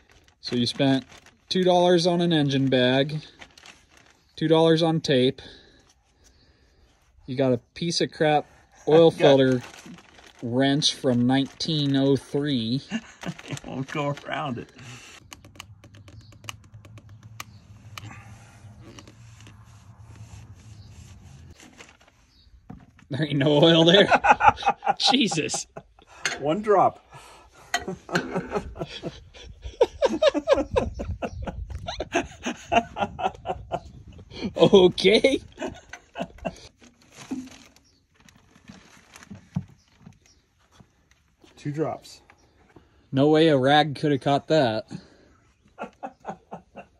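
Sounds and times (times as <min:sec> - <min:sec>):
plastic bag crinkling: 0:00.0 - 0:04.8, 0:08.9 - 0:22.5, 0:36.8 - 0:40.2.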